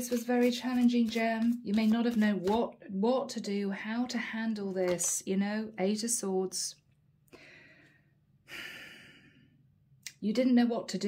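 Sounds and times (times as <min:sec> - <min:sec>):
breathy sigh: 0:07.4 - 0:09.6.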